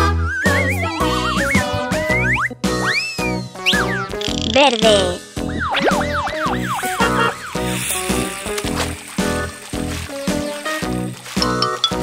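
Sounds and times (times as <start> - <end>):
cartoon background music: 0.0 - 12.0
whistle-like glide: 5.6 - 10.8.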